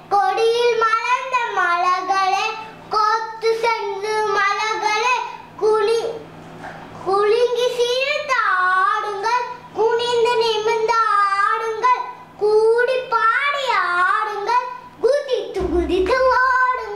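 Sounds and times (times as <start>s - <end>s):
child singing unaccompanied: 7.1s - 16.9s.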